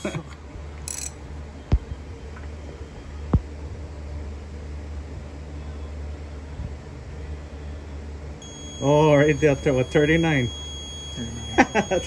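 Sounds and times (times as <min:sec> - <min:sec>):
steady low hum: 0:00.0 - 0:12.0
high electronic buzzer tone: 0:08.4 - 0:12.0.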